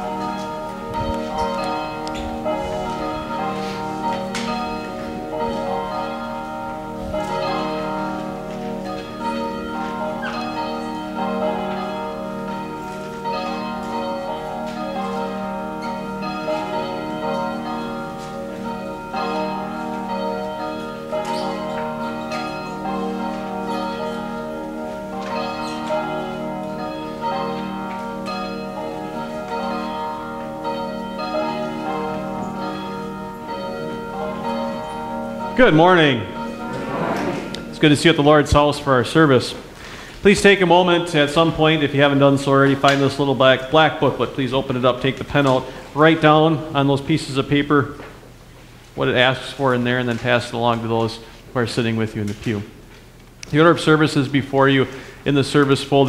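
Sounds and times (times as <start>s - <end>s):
church bells ringing: 0.0s - 52.4s, 53.7s - 56.0s.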